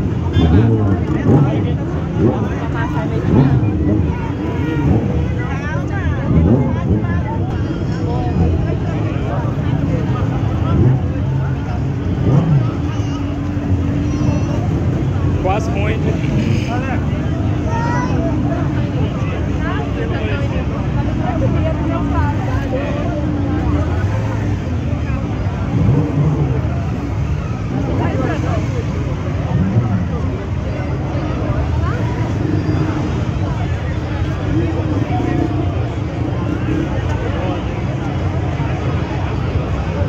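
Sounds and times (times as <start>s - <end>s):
crowd chatter: 0.0s - 40.0s
motorcycle engines running: 0.0s - 40.0s.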